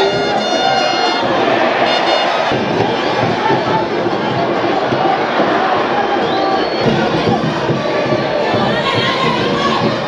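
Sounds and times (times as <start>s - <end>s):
stadium crowd cheering: 0.0s - 10.0s
high whistle: 6.2s - 7.0s.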